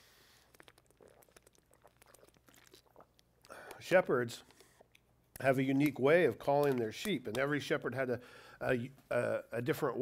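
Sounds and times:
man drinking from plastic bottle: 0:00.0 - 0:03.8.

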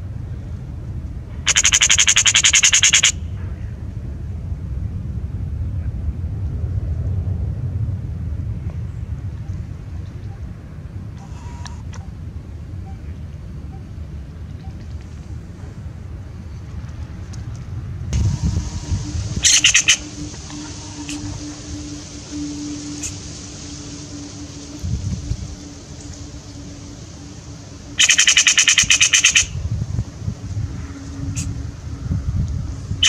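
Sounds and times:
low wind rumble on microphone: 0:00.0 - 0:33.0
magpie chattering rattle: 0:01.5 - 0:03.2, 0:19.4 - 0:21.3, 0:28.0 - 0:29.6.

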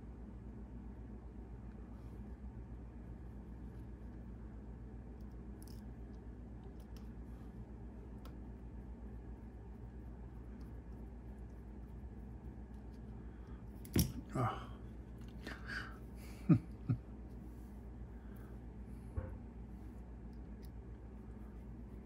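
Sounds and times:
low room hum: 0:00.0 - 0:22.0
wordless vocal noises: 0:14.2 - 0:16.0.

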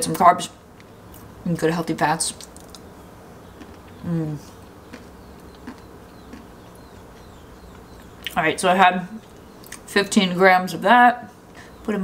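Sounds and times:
low steady hum: 0:00.0 - 0:12.0
mouth clicks while chewing: 0:04.9 - 0:08.4.

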